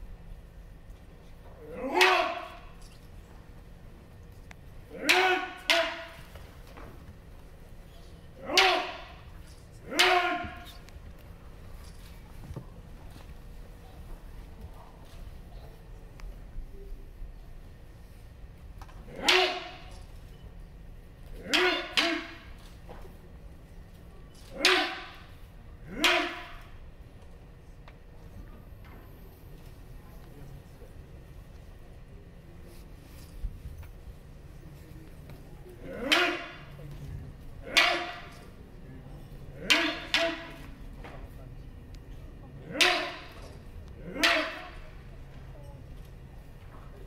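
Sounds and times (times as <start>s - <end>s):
martial arts shouts: 1.6s - 2.7s, 4.9s - 6.3s, 8.4s - 10.8s, 19.1s - 19.9s, 21.4s - 22.5s, 24.5s - 26.7s, 35.8s - 36.8s, 37.6s - 38.3s, 39.5s - 40.7s, 42.6s - 43.4s, 44.0s - 44.8s.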